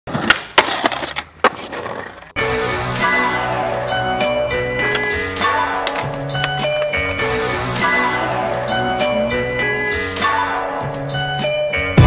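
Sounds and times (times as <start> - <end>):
skateboard clacks: 0.1 - 2.3, 4.8 - 7.2
skateboard rolling on hard ground: 0.1 - 2.4, 4.8 - 7.7.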